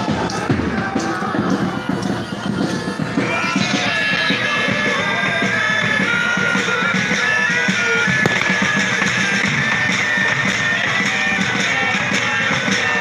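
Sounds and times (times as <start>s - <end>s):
bagpipes playing melody: 3.0s - 13.0s
bass drum and snare beating: 8.2s - 10.6s.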